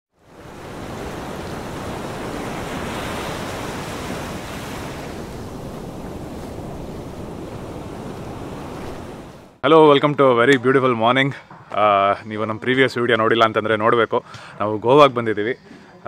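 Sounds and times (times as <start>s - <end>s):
sea waves rushing: 0.1s - 9.9s.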